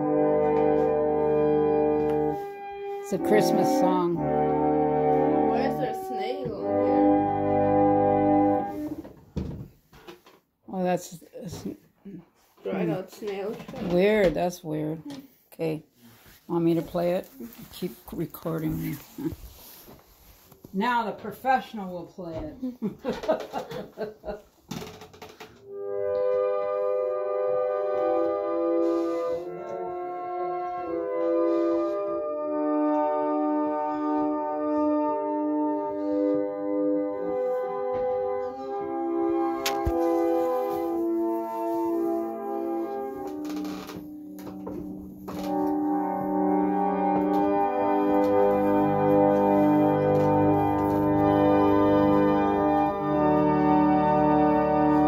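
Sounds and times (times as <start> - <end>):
reed organ chord: 0.0 - 9.0, 25.7 - 43.5, 44.1 - 55.0.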